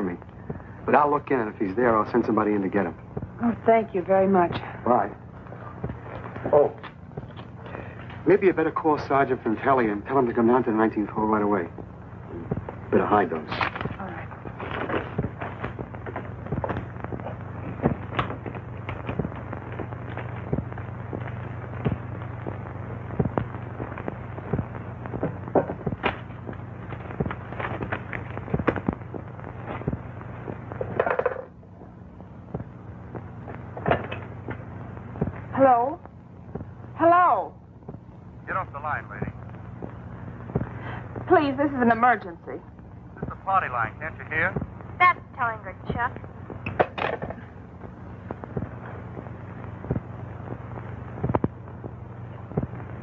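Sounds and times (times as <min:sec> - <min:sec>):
film soundtrack crackle and hiss: 0:00.0 - 0:53.0
steady low hum: 0:00.0 - 0:53.0.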